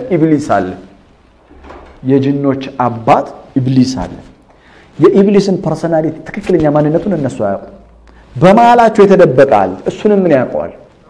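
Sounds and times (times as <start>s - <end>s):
man lecturing: 0.0s - 1.0s, 2.0s - 11.0s.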